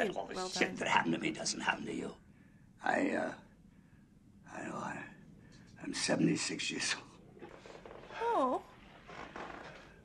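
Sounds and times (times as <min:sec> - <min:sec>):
old man speaking quietly: 0:00.0 - 0:01.3.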